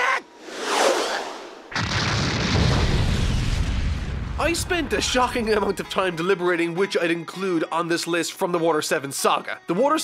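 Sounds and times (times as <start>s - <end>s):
whoosh: 0.3s - 4.1s
deep explosion boom and rumble: 1.7s - 5.6s.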